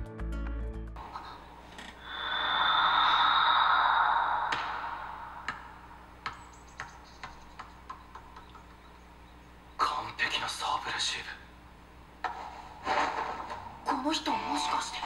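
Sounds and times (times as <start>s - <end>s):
swelling rush of sound: 1.0s - 6.3s.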